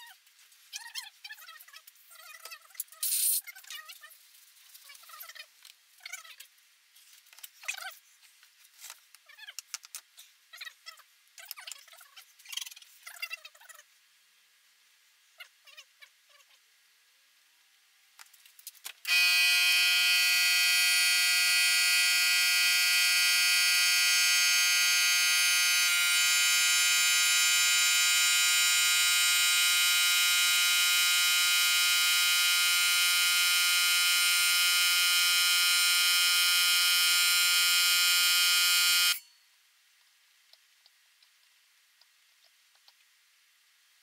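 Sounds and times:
electronic buzzing tone: 0:19.1 - 0:39.4.

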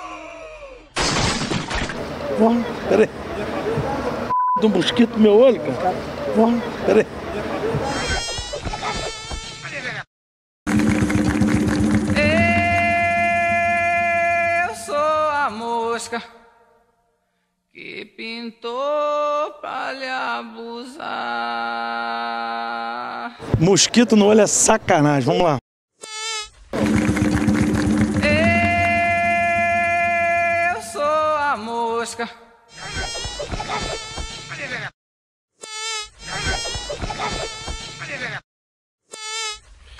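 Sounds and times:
insect buzzing: 0:26.0 - 0:26.6, 0:35.6 - 0:36.7, 0:39.1 - 0:39.6
fly buzzing: 0:26.0 - 0:30.0, 0:35.6 - 0:36.9, 0:39.1 - 0:39.6.

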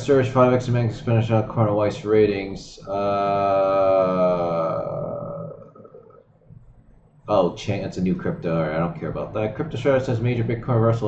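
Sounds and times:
faint steady hum: 0:00.0 - 0:11.0
man's drawn-out uh: 0:02.8 - 0:06.2.

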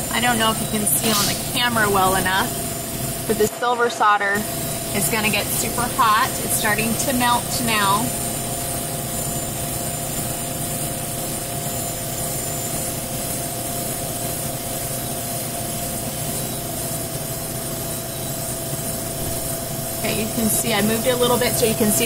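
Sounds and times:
induction heater drone: 0:00.0 - 0:22.0.

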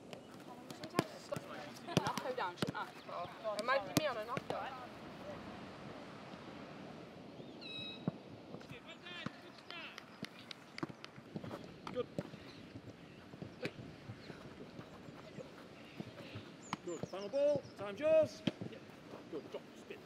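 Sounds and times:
birds chirping: 0:00.0 - 0:04.9, 0:07.2 - 0:20.0
footballs thudding: 0:00.1 - 0:04.7.

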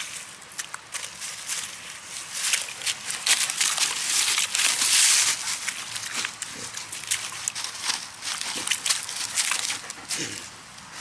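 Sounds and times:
paws scraping in mud: 0:00.0 - 0:11.0.

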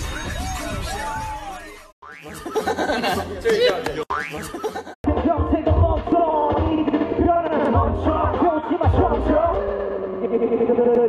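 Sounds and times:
comedic boing sound effect: 0:02.0 - 0:02.5, 0:04.1 - 0:04.6
laughter: 0:02.3 - 0:05.0
loud pop music with beat: 0:05.0 - 0:10.1.

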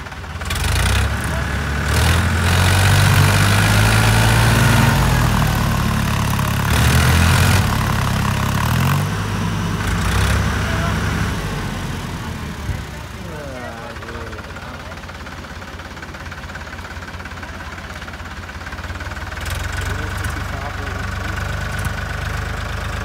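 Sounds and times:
tractor diesel engine labouring: 0:00.0 - 0:23.0.

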